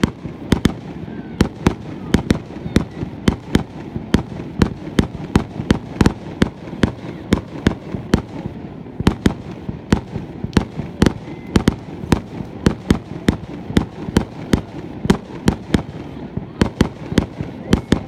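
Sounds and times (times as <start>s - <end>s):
continuous low rumble: 0.0s - 18.0s
fireworks exploding: 0.0s - 18.0s.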